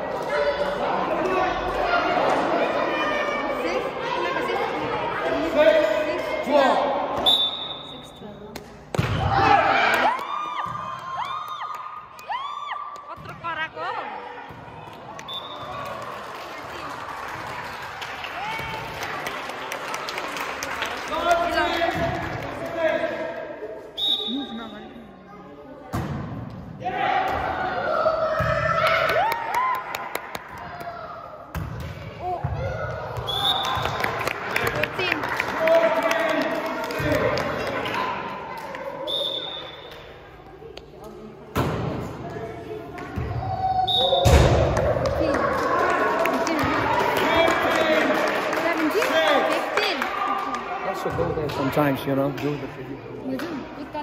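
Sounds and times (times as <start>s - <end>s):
voices and shouts echoing: 0.0s - 54.0s
volleyball thumps: 8.5s - 9.6s, 13.0s - 13.7s, 31.5s - 34.0s, 41.5s - 43.5s.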